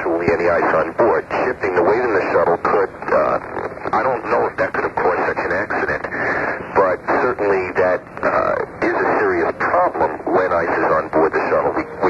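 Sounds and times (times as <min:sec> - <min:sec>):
person talking over radio: 0:00.0 - 0:12.0.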